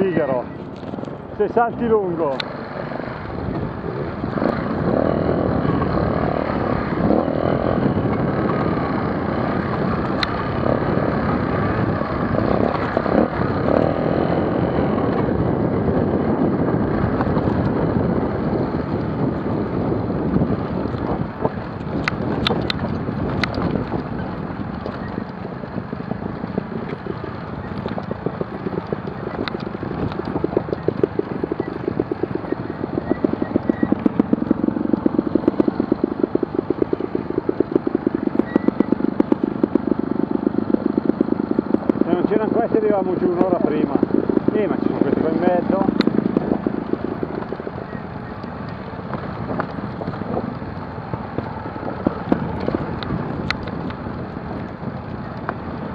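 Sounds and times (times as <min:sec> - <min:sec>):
motorcycle engines at low revs: 0:00.0 - 0:55.9.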